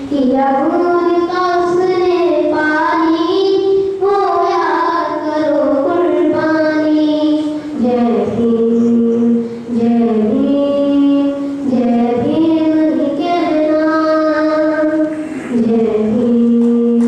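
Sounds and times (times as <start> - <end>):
boy singing into a microphone: 0.0 - 17.0.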